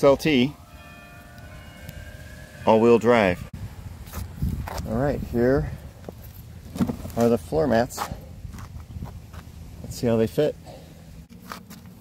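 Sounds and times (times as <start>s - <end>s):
soft footsteps on pavement: 4.0s - 12.0s
handling noise: 6.0s - 7.4s.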